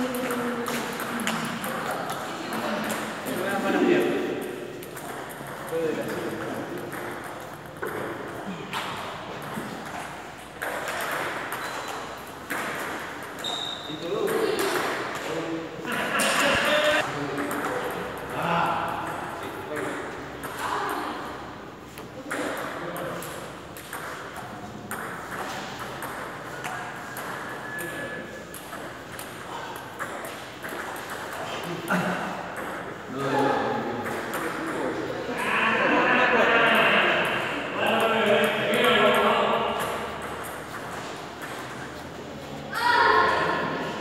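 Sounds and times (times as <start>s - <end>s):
table tennis balls hitting paddles: 0.0s - 35.6s, 36.6s - 44.0s
voices in a hall: 0.0s - 44.0s.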